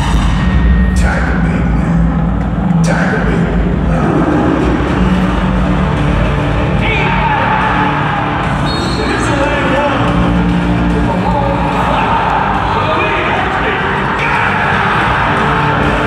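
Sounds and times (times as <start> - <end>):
loud music over public address: 0.0 - 16.0.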